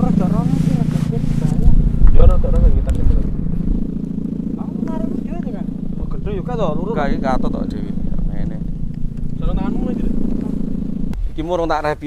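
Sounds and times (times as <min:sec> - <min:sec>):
kite hummer droning: 0:00.0 - 0:12.0.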